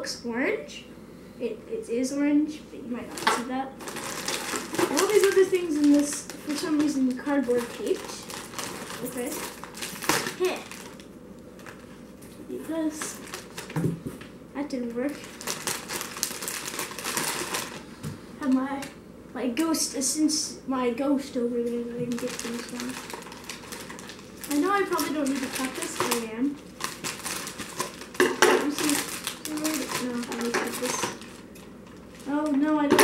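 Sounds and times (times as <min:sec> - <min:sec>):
child's wordless voice: 0:00.0 - 0:03.8, 0:04.8 - 0:08.3, 0:10.3 - 0:10.7, 0:12.4 - 0:13.2, 0:14.6 - 0:15.2, 0:18.4 - 0:23.0, 0:24.5 - 0:26.6, 0:28.5 - 0:31.2, 0:32.2 - 0:33.0
plastic bag crinkling: 0:03.0 - 0:12.1, 0:12.8 - 0:14.2, 0:14.9 - 0:18.9, 0:21.8 - 0:33.0.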